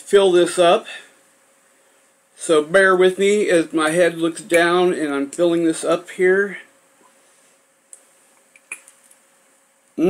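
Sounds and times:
small sharp clicks: 7.9 - 9.2.

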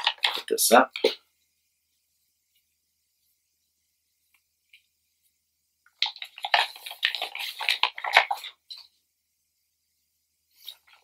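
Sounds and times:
plastic bag crinkling: 0.0 - 1.2, 5.9 - 8.8.

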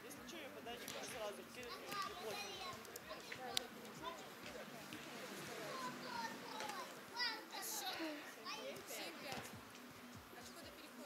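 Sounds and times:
distant people calling and chattering: 0.0 - 11.0.

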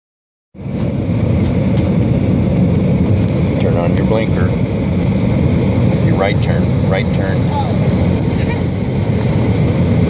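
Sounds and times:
car engine rumble from inside: 0.6 - 10.0.

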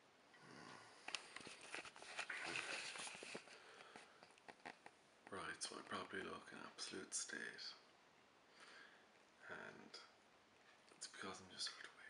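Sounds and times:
camera handling rustling: 1.1 - 5.0.

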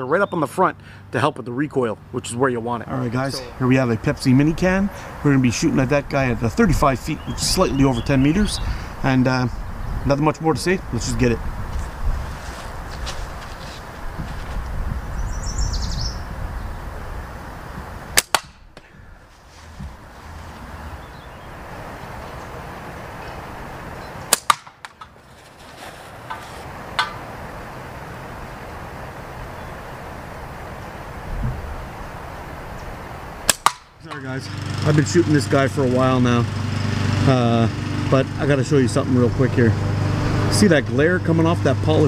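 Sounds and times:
slingshot bands snapping: 18.2 - 18.9, 24.3 - 25.1, 33.5 - 34.0
steel ball striking target: 18.2 - 18.9, 24.3 - 25.2, 33.5 - 34.2.

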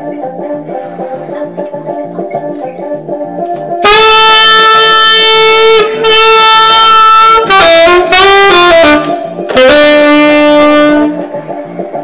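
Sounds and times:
backing track repeating pattern: 0.0 - 12.0
saxophone long note: 3.8 - 11.3.

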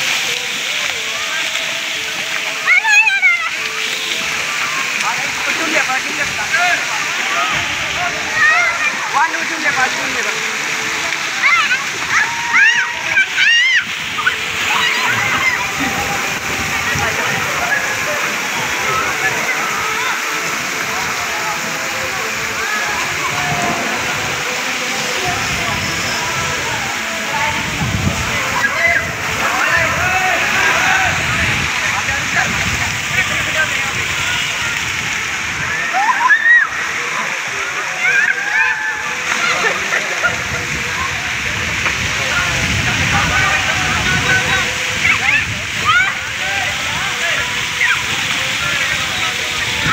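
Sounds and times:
running and splashing water: 0.0 - 49.9
children calling out: 2.4 - 5.0, 6.6 - 9.2, 11.2 - 20.7, 22.5 - 31.6, 34.1 - 40.5, 44.8 - 49.9.

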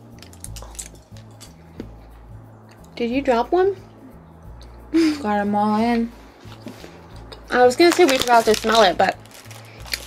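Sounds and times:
quiet music with bass line: 0.0 - 10.0.

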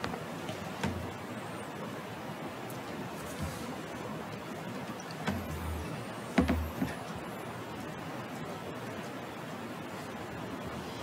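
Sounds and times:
low thumps: 0.0 - 1.3, 5.2 - 7.0
small knock: 0.8 - 1.1, 6.4 - 7.0.

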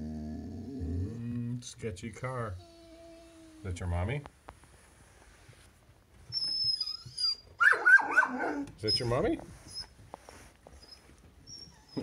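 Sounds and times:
dog whining: 0.0 - 1.5, 2.5 - 3.8, 6.3 - 10.0, 10.7 - 12.0
dog barking: 7.6 - 8.6.

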